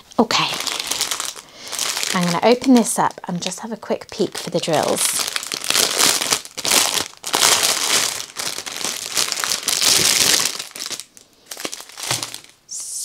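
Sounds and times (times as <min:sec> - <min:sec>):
plastic bag crinkling: 0:00.0 - 0:12.6.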